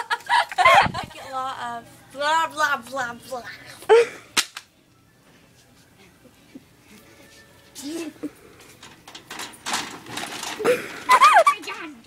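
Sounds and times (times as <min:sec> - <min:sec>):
sharp crack: 0:04.4 - 0:04.7.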